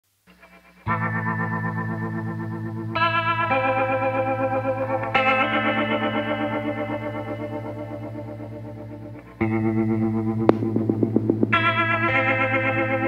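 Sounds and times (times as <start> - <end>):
electric guitar chords with wavering effect: 0.3 - 13.0.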